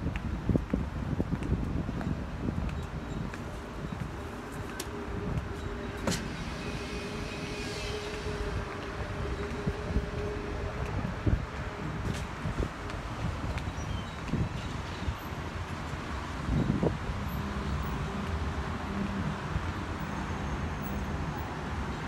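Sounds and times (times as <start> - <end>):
wind rumbling on microphone: 0.0 - 22.0
passing car hum: 3.0 - 13.5.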